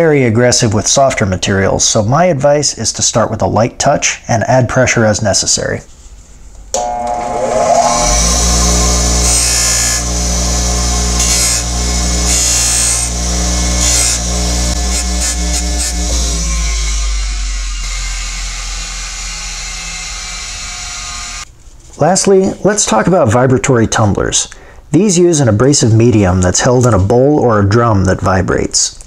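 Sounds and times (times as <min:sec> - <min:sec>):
metal grinding on wheel: 0:06.8 - 0:21.4
bench grinder motor humming: 0:06.8 - 0:21.5.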